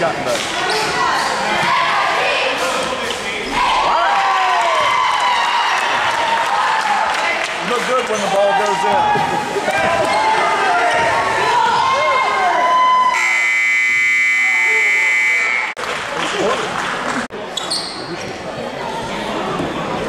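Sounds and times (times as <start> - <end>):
crowd voices: 0.0 - 20.0
scoreboard buzzer: 13.2 - 15.8.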